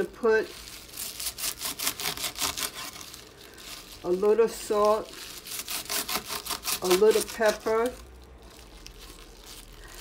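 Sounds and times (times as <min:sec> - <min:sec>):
kale leaves rustling and crunching: 0:00.0 - 0:10.0.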